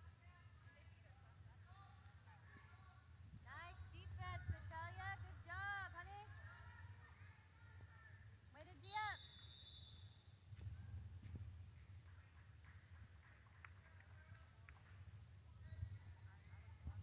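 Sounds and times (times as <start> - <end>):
low gym hum: 0.0 - 17.0.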